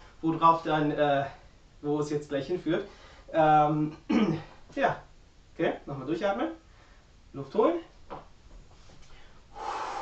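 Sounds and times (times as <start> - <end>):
man taking a deep breath: 2.9 - 3.3, 9.1 - 10.0.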